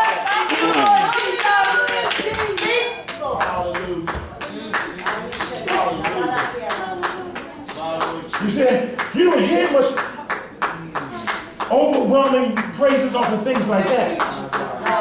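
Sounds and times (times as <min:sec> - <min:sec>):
congregation clapping in a beat: 0:00.0 - 0:15.0.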